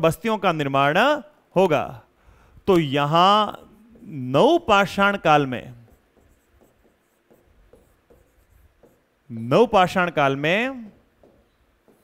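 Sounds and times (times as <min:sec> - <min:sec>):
marker pen writing on whiteboard: 0:03.4 - 0:12.0.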